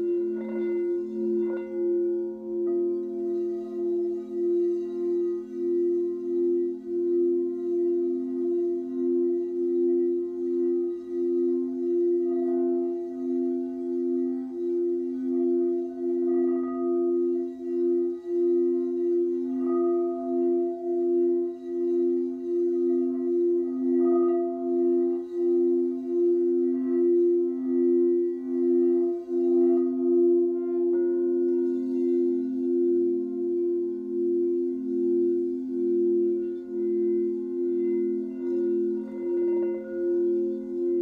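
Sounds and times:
singing bowls ringing: 0:00.0 - 0:41.0.

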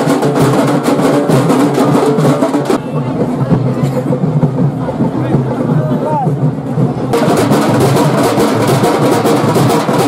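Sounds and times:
fast drumming: 0:00.0 - 0:10.0
crowd voices: 0:01.6 - 0:09.7.

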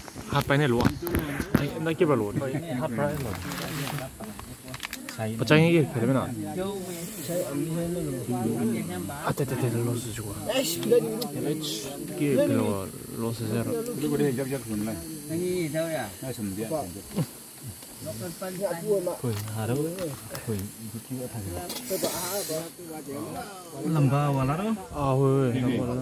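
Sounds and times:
faint high hiss: 0:00.0 - 0:26.0
people talking: 0:00.0 - 0:26.0.

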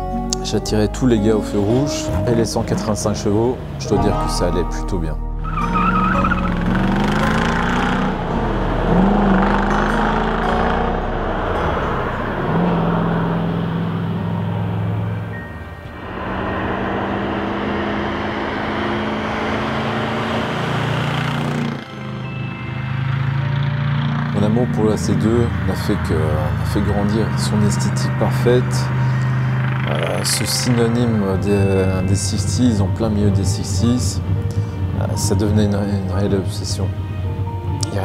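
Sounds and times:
background music: 0:00.0 - 0:38.0
car engine shifting through gears: 0:05.4 - 0:38.0.

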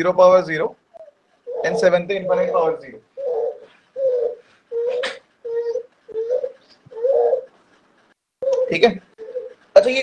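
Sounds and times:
bird cooing: 0:00.9 - 0:07.6, 0:08.4 - 0:09.6
man speaking: 0:01.6 - 0:03.0.

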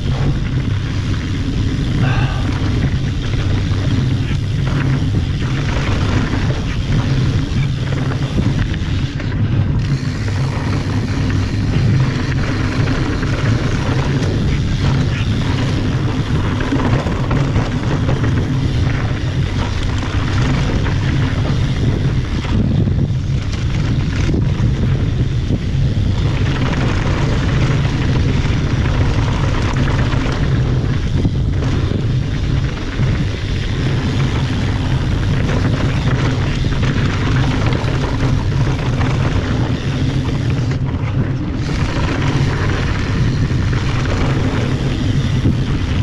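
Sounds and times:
bike tyres rolling on dirt: 0:00.0 - 0:46.0
wind on microphone: 0:00.0 - 0:46.0.

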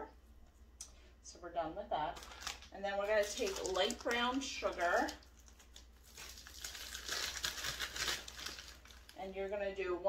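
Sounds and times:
packaging crinkling and rustling: 0:02.1 - 0:09.2.

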